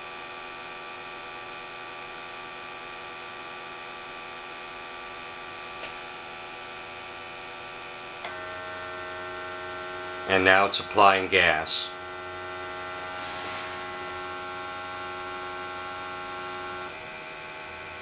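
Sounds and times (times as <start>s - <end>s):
electrical hum: 0.0s - 18.0s.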